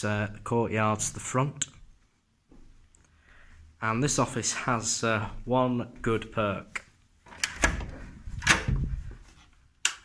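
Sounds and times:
door unlatching clicks and knocks: 7.3s - 9.0s.

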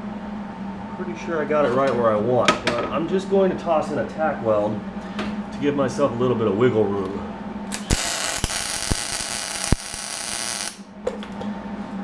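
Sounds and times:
welding arc: 7.7s - 10.9s.

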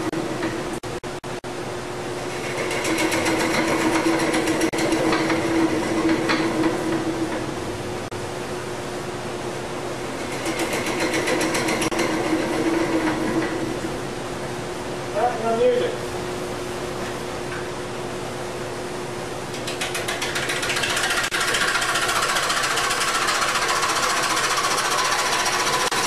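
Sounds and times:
wood lathe humming: 2.2s - 7.8s, 10.0s - 14.0s, 19.6s - 26.0s
turning tool cutting wood: 2.3s - 7.5s, 10.0s - 13.8s, 19.6s - 26.0s.

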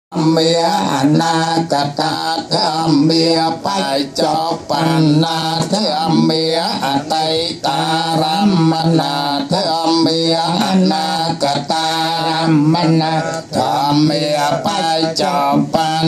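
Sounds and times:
men chanting into microphones: 0.1s - 16.0s.

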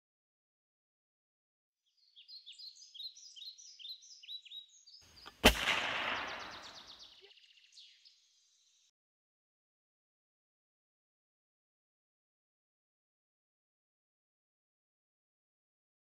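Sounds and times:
birds chirping: 2.0s - 8.9s
echoing gunshot: 5.2s - 7.0s.

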